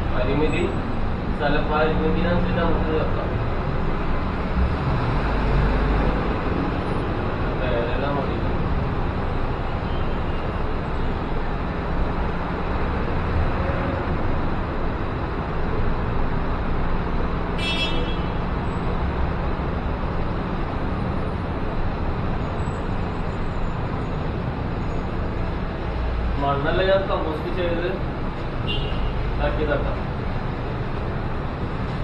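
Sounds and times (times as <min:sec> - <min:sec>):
road traffic noise: 0:00.0 - 0:32.0.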